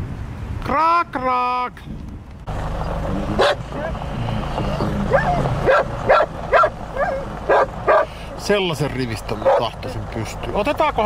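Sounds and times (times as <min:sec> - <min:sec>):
car engine idling: 0:02.5 - 0:11.0.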